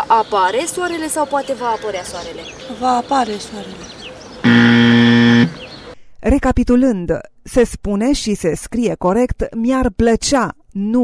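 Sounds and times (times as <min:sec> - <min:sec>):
loud flat buzzer: 0:04.4 - 0:05.7.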